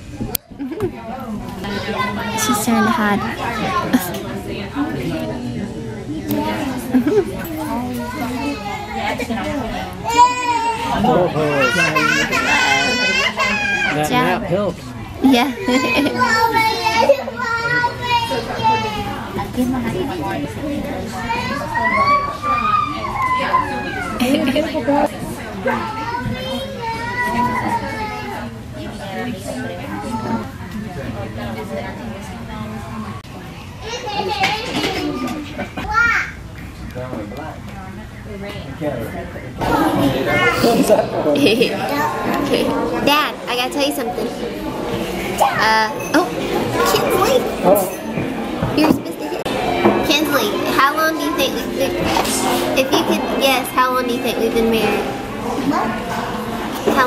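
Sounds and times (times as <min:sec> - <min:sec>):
background chatter: 0:00.0 - 0:57.0
children playing and talking: 0:00.0 - 0:57.0
children shouting: 0:10.0 - 0:14.1, 0:15.6 - 0:19.3, 0:21.1 - 0:24.4, 0:25.6 - 0:28.5, 0:49.2 - 0:57.0.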